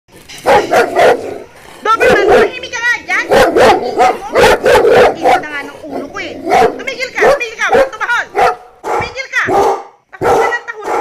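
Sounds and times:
dog barking: 0.4 - 2.6, 3.2 - 11.0.

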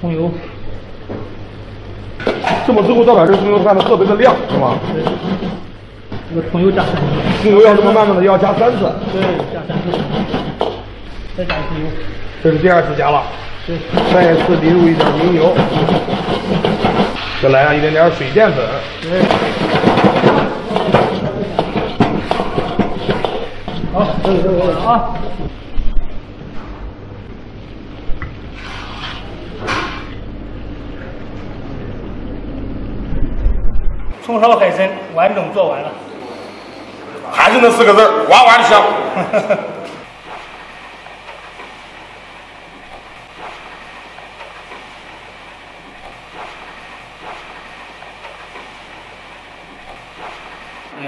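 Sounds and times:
low electrical hum: 0.0 - 51.0
machine hiss and rumble: 0.0 - 51.0
gas burner and extraction rushing: 0.7 - 51.0.

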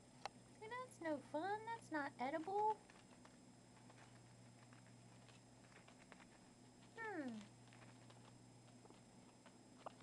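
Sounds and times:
faint ticks and rustles: 0.2 - 10.0.

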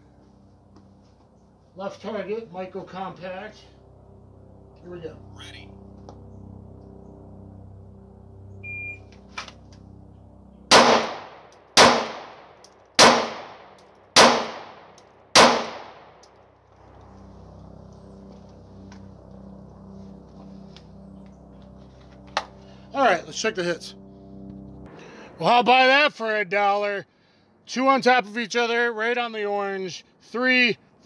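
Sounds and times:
shot timer beep: 8.6 - 9.1
pistol shots with echo: 10.7 - 16.2.

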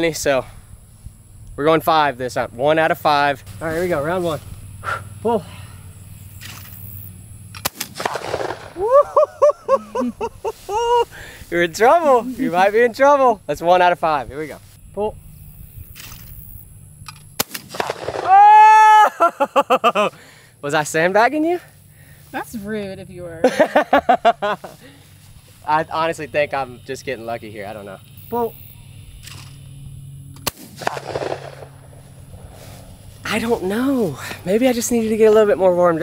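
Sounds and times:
shotgun shot: 7.6 - 8.8, 17.4 - 18.4, 30.4 - 32.6
person shouting: 18.2 - 19.3.

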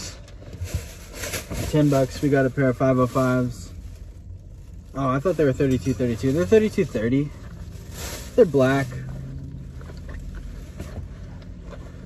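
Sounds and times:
low rumble inside car cabin: 0.0 - 12.0.

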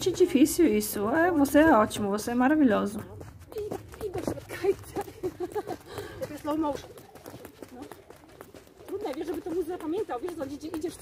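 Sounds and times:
jump ropes slapping clay court: 0.0 - 11.0
quiet voices talking: 0.0 - 11.0.

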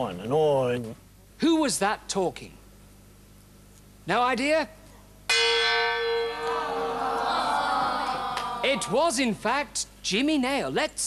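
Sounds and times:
bell ringing: 5.3 - 7.4.

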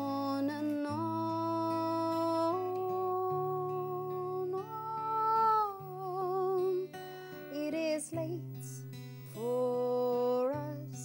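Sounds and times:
acoustic guitar: 0.0 - 11.0
woman singing a slow ballad: 0.0 - 11.0.

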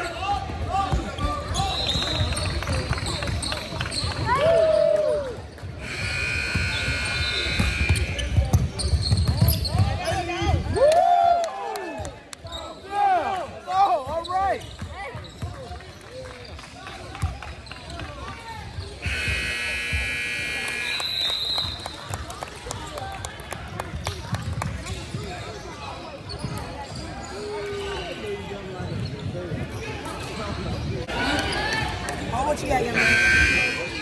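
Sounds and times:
sneakers squeaking: 0.8 - 4.4, 5.6 - 10.4, 13.8 - 15.8, 17.2 - 20.9, 24.4 - 34.0
scoreboard horn: 5.8 - 8.1, 19.0 - 21.0, 33.0 - 34.0
ball bouncing on court: 5.9 - 10.0
people talking: 16.8 - 34.0.

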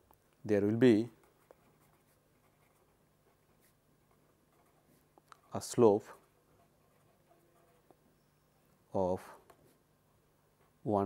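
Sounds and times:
pen writing on paper: 1.2 - 5.2, 6.5 - 8.0.

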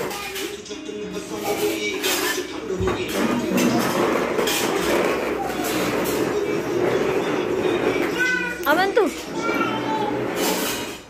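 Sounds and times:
child vocalising: 8.1 - 8.7, 9.3 - 10.4
child squealing: 9.3 - 10.3.

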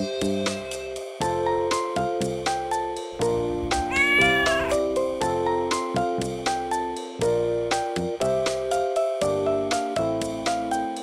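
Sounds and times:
background music: 2.3 - 7.5
cat meowing: 3.2 - 5.3.

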